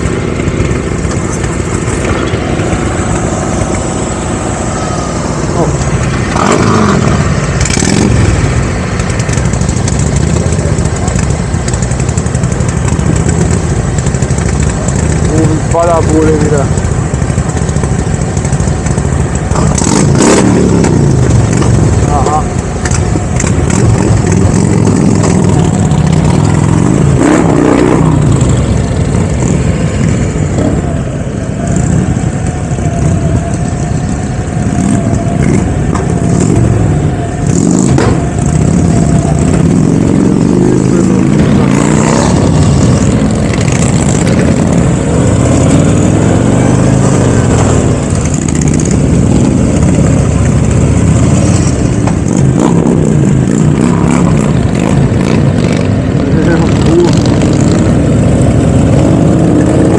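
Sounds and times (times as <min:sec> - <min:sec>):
motorcycle engines accelerating: 0:00.0 - 0:59.9.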